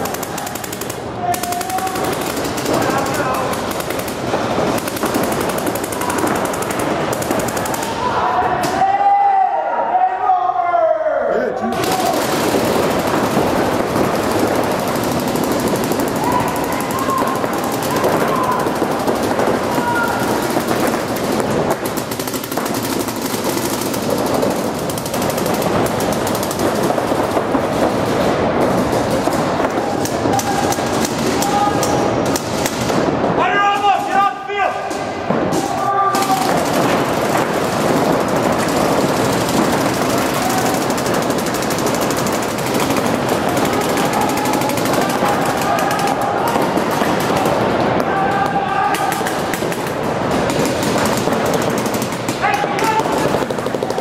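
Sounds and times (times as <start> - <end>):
paintball markers firing: 0.0 - 8.8, 11.7 - 33.1, 34.9 - 54.0
players shouting: 0.0 - 54.0.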